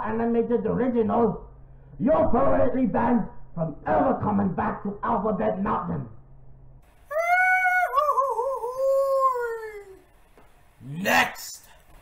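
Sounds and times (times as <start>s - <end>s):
long wailing cry: 7.1s - 10.0s.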